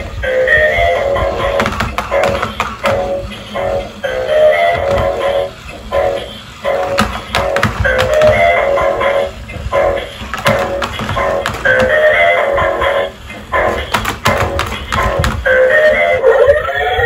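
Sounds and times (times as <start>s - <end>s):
electronic dance music from toy: 0.0s - 17.0s.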